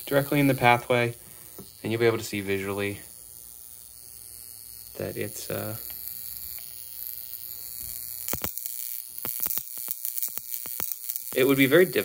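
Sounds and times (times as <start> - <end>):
electrode high-pitched hiss: 0.0 - 12.0
sparks crackling: 0.0 - 12.0.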